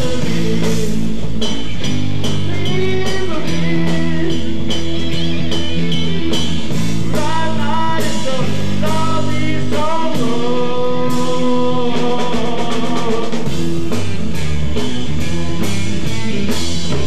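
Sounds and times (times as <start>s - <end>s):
heavy rock band playing: 0.0s - 17.0s.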